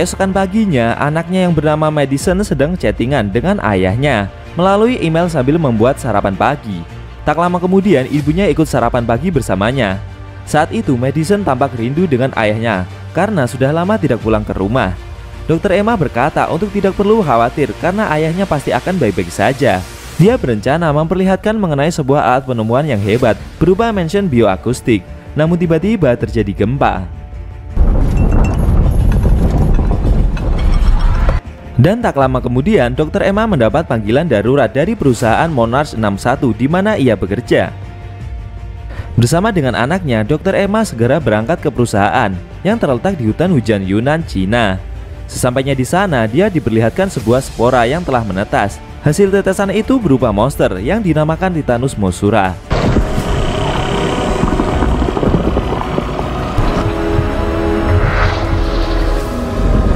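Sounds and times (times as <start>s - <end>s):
held film score music: 0.0s - 59.9s
deep earthquake rumble: 27.7s - 31.4s, 52.6s - 59.9s.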